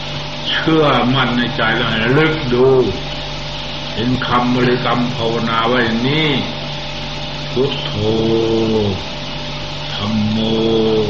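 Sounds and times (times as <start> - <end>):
low hum and hiss: 0.0 - 11.0
man chanting a held syllable: 7.6 - 9.1, 9.9 - 11.0.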